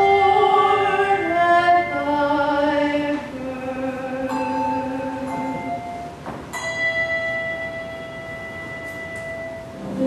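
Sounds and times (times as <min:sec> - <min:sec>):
handbells ringing a chord: 0:04.3 - 0:10.0.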